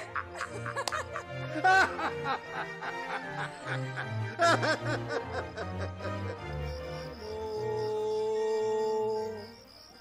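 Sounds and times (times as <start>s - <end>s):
man and woman laughing: 0.0s - 6.6s
background music: 0.0s - 10.0s.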